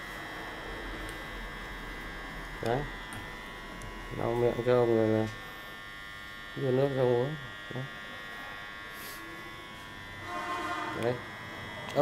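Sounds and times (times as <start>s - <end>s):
high-pitched electrical whine: 0.0s - 12.0s
faint steady pitched tone: 1.4s - 12.0s.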